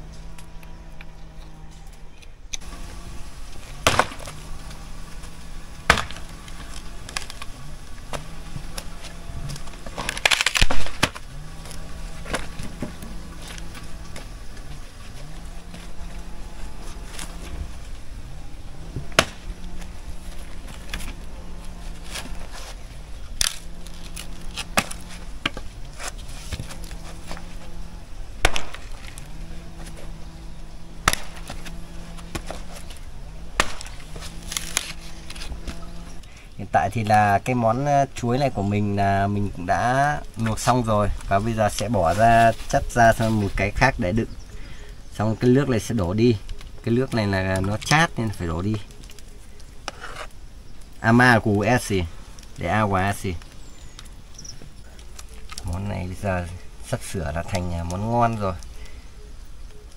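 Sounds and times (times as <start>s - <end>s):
axe chopping wood: 3.8s - 4.4s, 5.2s - 7.3s, 9.8s - 11.3s, 19.0s - 19.6s, 24.6s - 26.7s, 28.4s - 29.1s, 31.0s - 32.8s, 33.6s - 34.9s.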